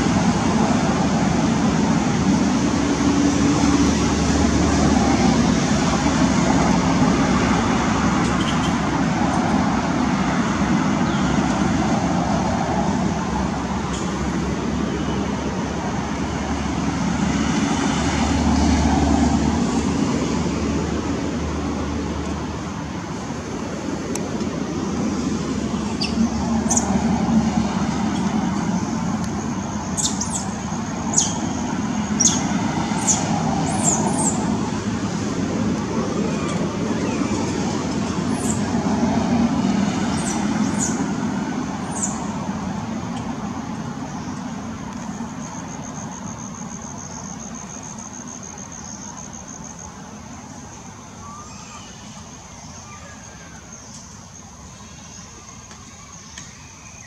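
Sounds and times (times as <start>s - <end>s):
distant road traffic rumble: 0.0s - 57.0s.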